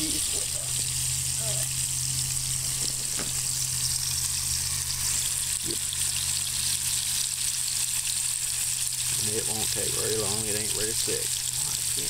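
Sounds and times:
low hum: 0:00.0 - 0:10.2
fish sizzling in oil: 0:00.0 - 0:12.0.

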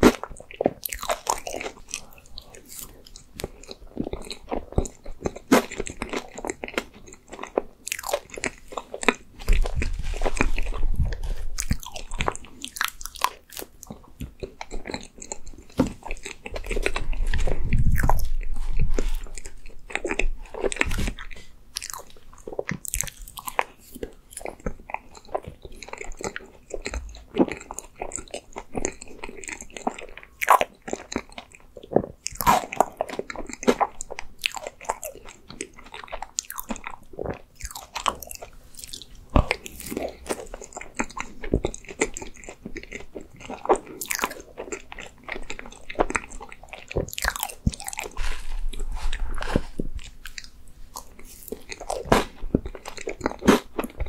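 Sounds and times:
person chewing and smacking: 0:00.0 - 0:54.0
low rumble: 0:16.8 - 0:19.3.

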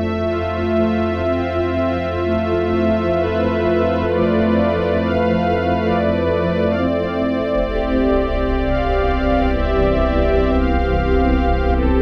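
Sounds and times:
synthesizer sustained chords: 0:00.0 - 0:12.0
low drone: 0:07.4 - 0:12.0.

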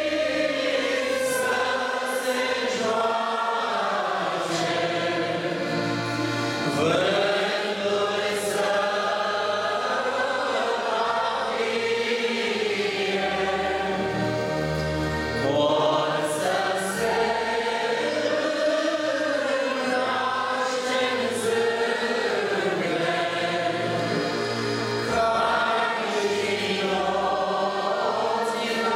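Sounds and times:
congregation singing a hymn: 0:00.0 - 0:28.9.

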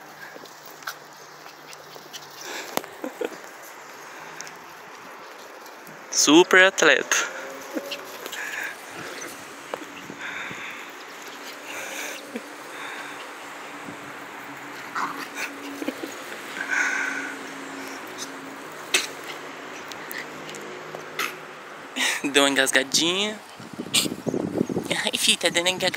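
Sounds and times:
dogs running on grass: 0:00.0 - 0:06.2, 0:07.5 - 0:21.1.

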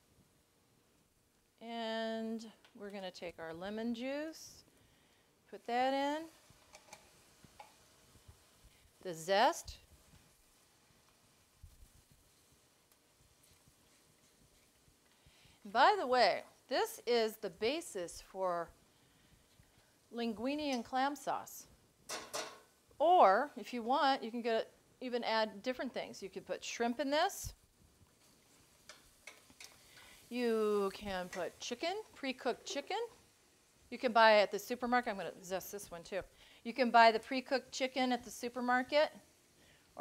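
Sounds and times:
utensil clicking on pan: 0:06.6 - 0:07.8, 0:28.8 - 0:30.1, 0:31.2 - 0:31.6.

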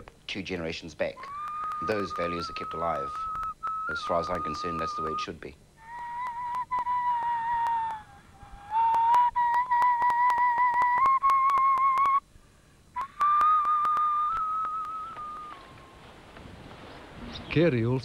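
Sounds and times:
bone flute playing long notes: 0:01.2 - 0:12.2, 0:13.0 - 0:16.2.

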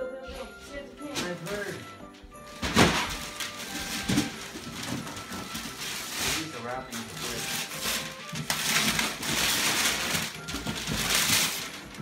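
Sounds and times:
wrapping paper ripping: 0:02.5 - 0:12.0.

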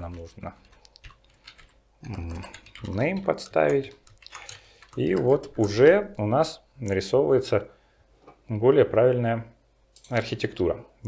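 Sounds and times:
man talking: 0:00.0 - 0:00.6, 0:02.0 - 0:04.0, 0:05.0 - 0:07.7, 0:08.5 - 0:11.0
keyboard clicks: 0:00.1 - 0:05.9.

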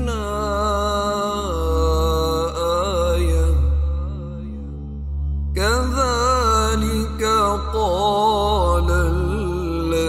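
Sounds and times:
person chanting recitation: 0:00.0 - 0:10.0.

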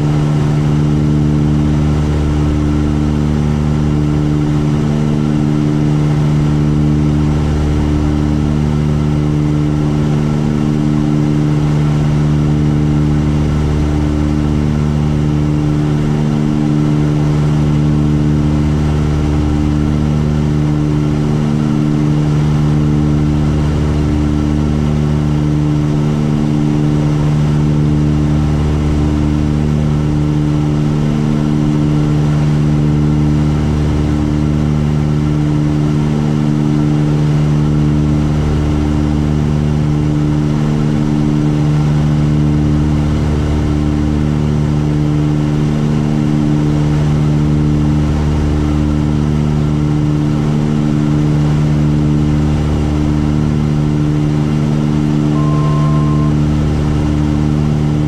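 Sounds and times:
light aircraft engines droning: 0:00.0 - 0:58.0.

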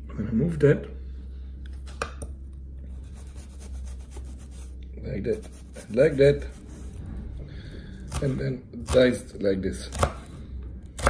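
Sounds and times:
knife cutting onion on board: 0:08.1 - 0:10.3.

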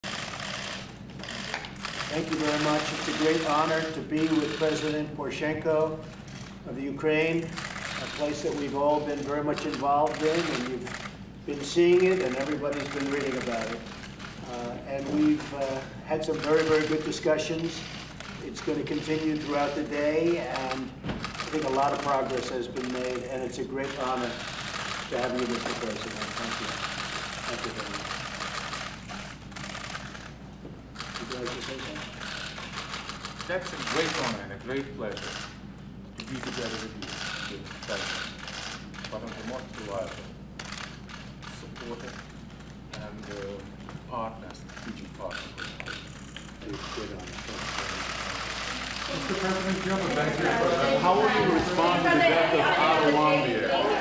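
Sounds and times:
camera shutters clicking: 0:00.0 - 0:05.0, 0:07.4 - 0:11.2, 0:11.9 - 0:15.5, 0:16.3 - 0:17.1, 0:18.0 - 0:19.8, 0:20.5 - 0:23.2, 0:23.8 - 0:30.4, 0:31.0 - 0:34.4, 0:36.2 - 0:43.4, 0:44.7 - 0:52.2.

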